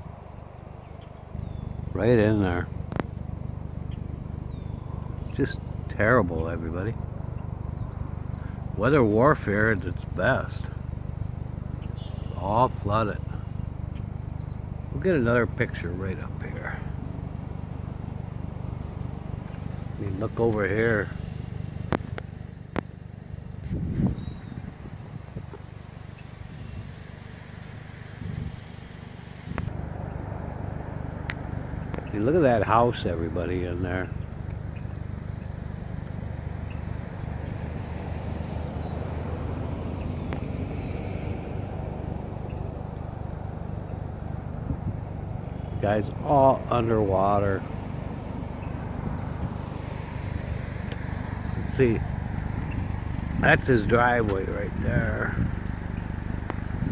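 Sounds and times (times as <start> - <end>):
car engine and tyre rumble: 0.0 - 56.9
motor vehicle running: 0.0 - 56.9.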